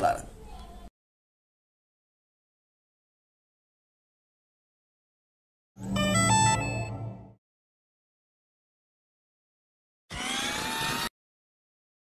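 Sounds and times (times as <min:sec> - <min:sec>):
drone motors whining: 0:10.1 - 0:11.1.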